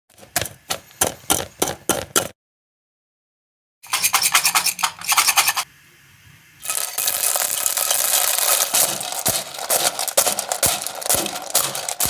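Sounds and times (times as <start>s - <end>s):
spoon stirring grains in metal pot: 6.6s - 12.0s.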